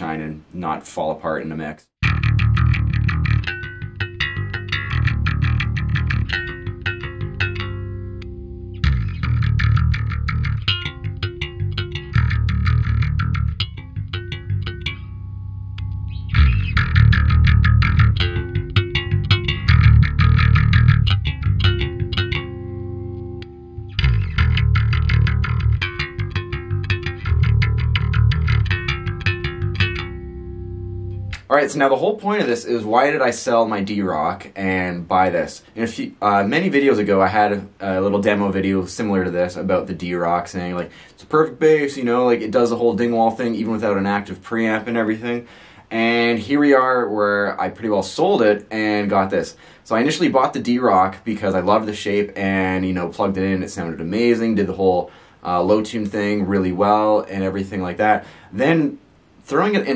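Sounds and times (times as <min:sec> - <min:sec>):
electric bass played fingerstyle: 0:02.0 - 0:31.5.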